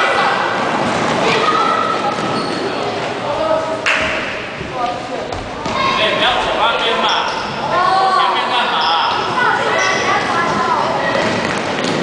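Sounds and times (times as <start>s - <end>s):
sneakers squeaking: 0.8s - 3.3s, 7.1s - 7.7s, 8.7s - 12.0s.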